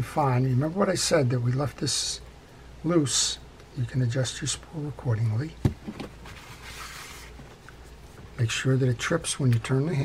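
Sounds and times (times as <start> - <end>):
soft hiss: 0.0 - 10.0.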